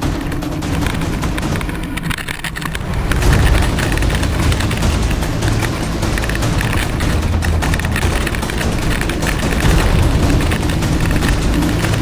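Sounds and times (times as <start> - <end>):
bike clattering over rough ground: 0.0 - 12.0
wind rushing over camera: 0.8 - 12.0.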